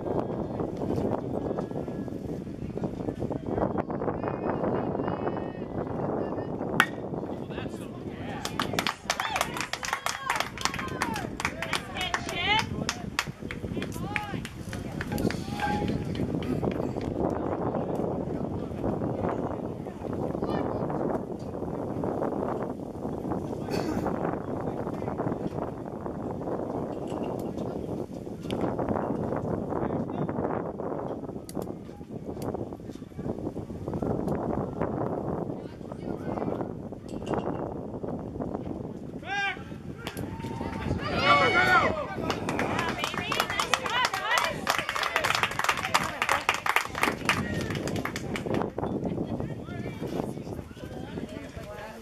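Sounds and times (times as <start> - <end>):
crowd chatter: 0.0 - 52.0
bat cracking ball: 6.8 - 7.0
spectators clapping: 8.3 - 17.1, 42.1 - 48.8
spectators shouting: 39.2 - 45.3.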